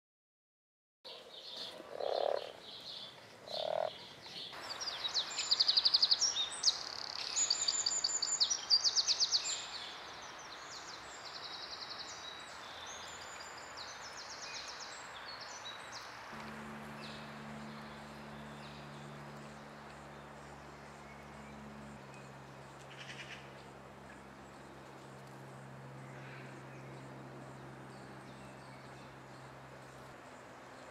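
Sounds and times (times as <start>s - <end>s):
frog croaking: 1.7s - 2.6s, 3.4s - 4.0s
low steady hum: 15.6s - 30.9s
songbird trilling: 16.8s - 25.0s.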